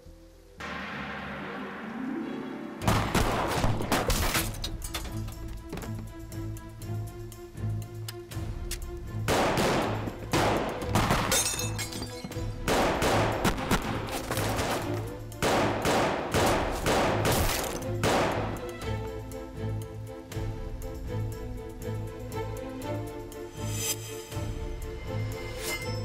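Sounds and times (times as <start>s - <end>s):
tense dramatic score: 0.4s - 11.4s, 12.5s - 26.0s
pistol shots: 9.3s - 11.4s, 12.7s - 14.8s, 15.4s - 18.6s.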